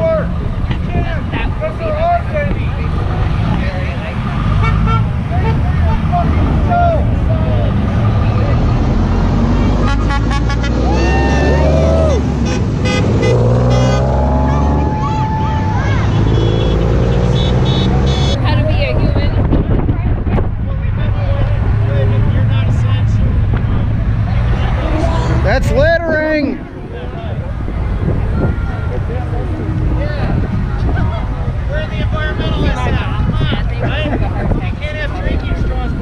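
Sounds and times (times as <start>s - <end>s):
traffic passing on busy road: 0.0s - 36.0s
car horns honking: 4.5s - 5.8s, 9.7s - 11.2s, 12.4s - 15.0s, 15.8s - 18.6s.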